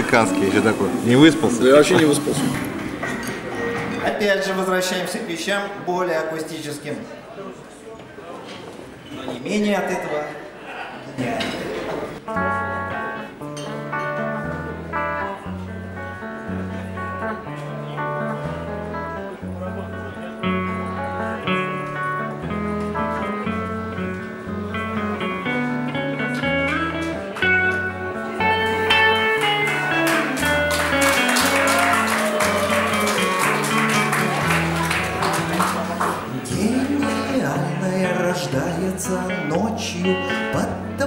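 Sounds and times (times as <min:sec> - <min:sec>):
guitars playing instrumental: 0:00.0 - 0:04.2, 0:12.2 - 0:41.0.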